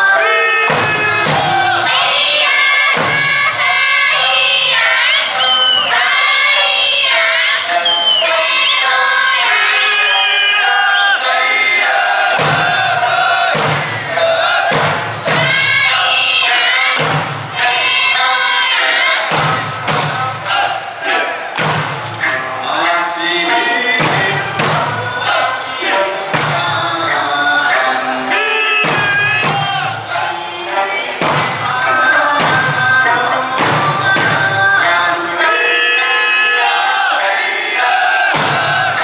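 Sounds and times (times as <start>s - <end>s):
drum beats: 0.0s - 39.0s
folk song over sound system: 0.0s - 39.0s
rhythmic group shouts: 0.0s - 39.0s.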